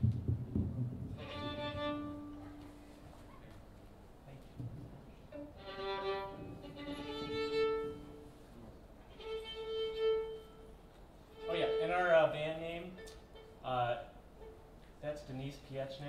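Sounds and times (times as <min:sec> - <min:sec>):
fiddle bowed notes: 0:01.1 - 0:03.3, 0:05.3 - 0:15.0
person speaking: 0:11.4 - 0:14.2.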